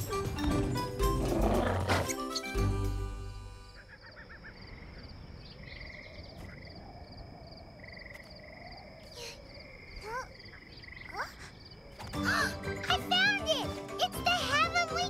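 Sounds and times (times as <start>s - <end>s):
frogs trilling: 3.7s - 12.1s.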